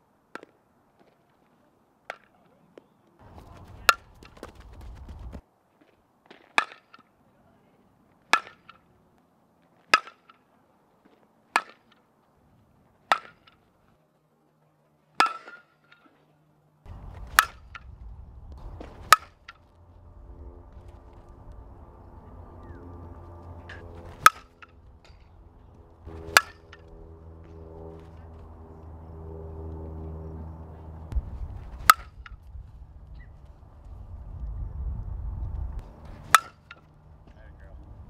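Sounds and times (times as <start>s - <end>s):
bat cracking ball: 3.2s - 5.4s, 6.3s - 7.0s, 8.3s - 8.9s, 9.9s - 10.4s, 11.5s - 12.0s, 13.1s - 13.6s, 15.2s - 16.2s, 16.9s - 17.9s, 18.6s - 19.7s, 20.7s - 29.1s, 30.8s - 32.5s, 35.8s - 37.4s.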